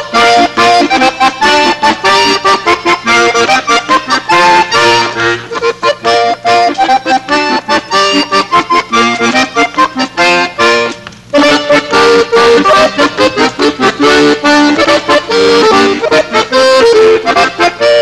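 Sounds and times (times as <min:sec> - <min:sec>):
accordion duet: 0:00.0 - 0:18.0.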